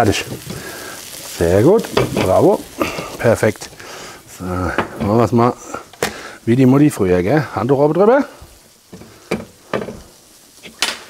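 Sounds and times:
meatballs sizzling in a pan: 0:00.0 - 0:11.0.

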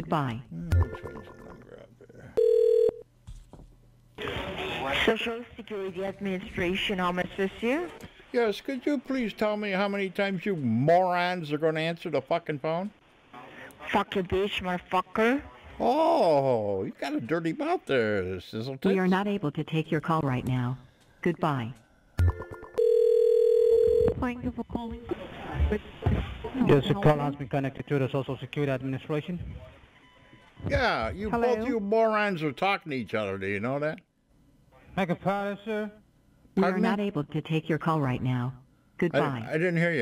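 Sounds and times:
telephone beep: 0:02.4 - 0:03.0, 0:22.2 - 0:24.2.

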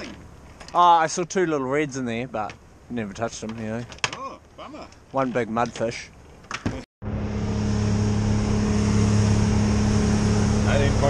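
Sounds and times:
person laughing: 0:04.2 - 0:05.0
outboard motor drone: 0:07.0 - 0:11.0.

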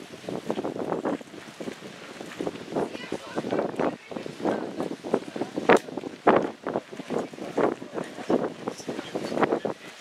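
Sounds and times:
wind on microphone: 0:00.0 - 0:10.0
crowd talking: 0:02.7 - 0:10.0.

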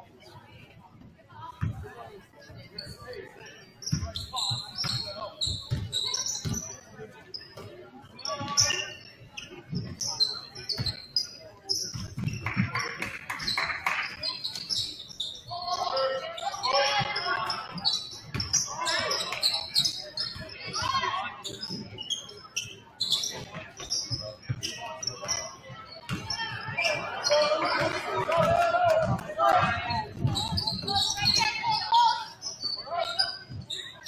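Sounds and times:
sneakers squeaking: 0:02.5 - 0:34.0
voices calling out: 0:08.2 - 0:34.0.

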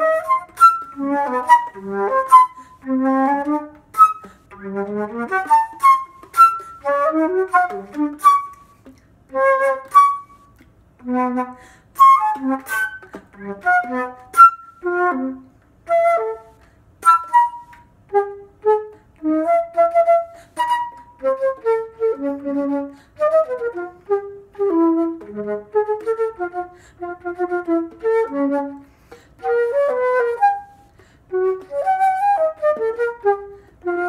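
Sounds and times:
solo flute playing: 0:00.0 - 0:34.0.

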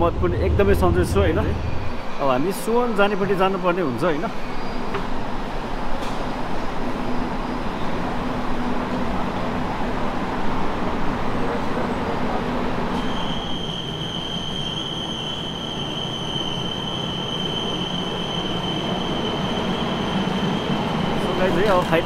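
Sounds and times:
train rumbling: 0:00.0 - 0:07.2, 0:17.3 - 0:22.0
high-pitched train tone: 0:12.9 - 0:21.9.

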